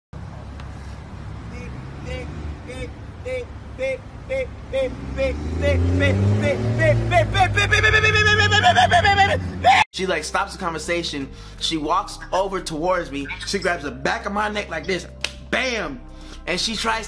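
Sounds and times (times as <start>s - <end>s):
car engine humming: 0.2s - 9.8s
man imitating beeps: 1.6s - 5.9s.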